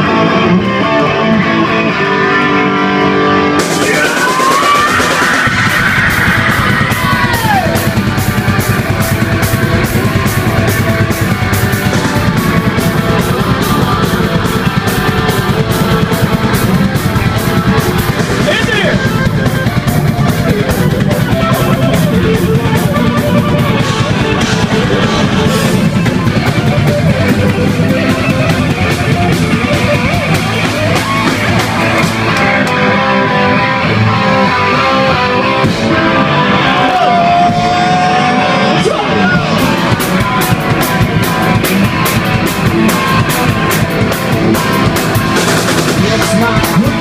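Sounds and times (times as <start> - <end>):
live rock band playing: 0.0 - 47.0.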